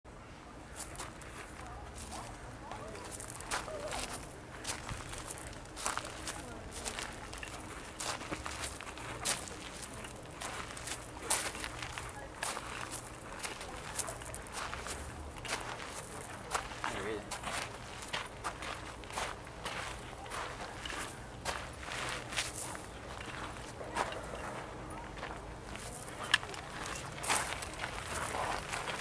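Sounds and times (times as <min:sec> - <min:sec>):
faint voices: 0:00.1 - 0:29.0
footsteps scuffing on a path: 0:00.7 - 0:29.0.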